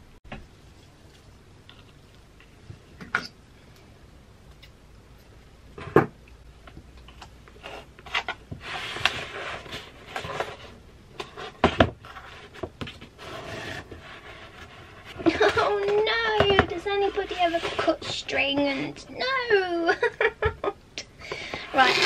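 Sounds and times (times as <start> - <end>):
twine rustling and scraping: 7.5 - 19.0, 21.5 - 22.0
person speaking: 15.2 - 20.1, 21.6 - 22.0.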